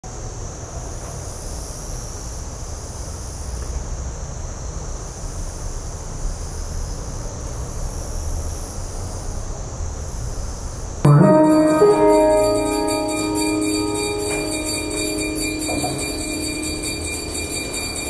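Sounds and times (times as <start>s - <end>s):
high-pitched intermittent note: 11.1s - 18.0s.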